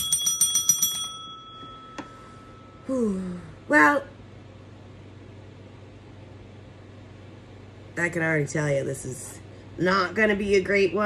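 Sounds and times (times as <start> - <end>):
small metal bell ringing: 0.0 - 2.9.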